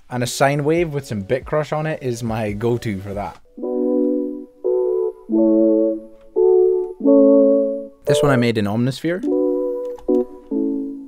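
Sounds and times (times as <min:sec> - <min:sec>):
soft bit-crushed synth chords: 0:03.4 - 0:11.0.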